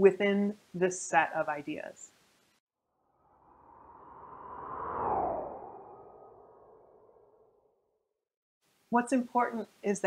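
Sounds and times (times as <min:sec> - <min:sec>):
whoosh with falling pitch sweep: 0:03.0 - 0:07.8.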